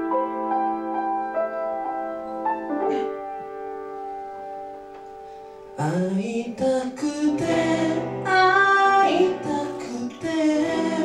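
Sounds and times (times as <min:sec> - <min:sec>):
piano: 0:00.0 - 0:11.0
acoustic guitar: 0:02.2 - 0:11.0
person singing: 0:05.8 - 0:11.0.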